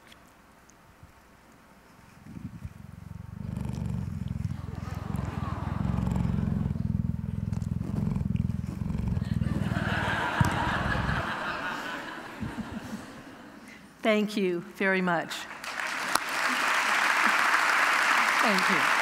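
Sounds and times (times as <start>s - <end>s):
cheetah purring: 2.0s - 11.8s.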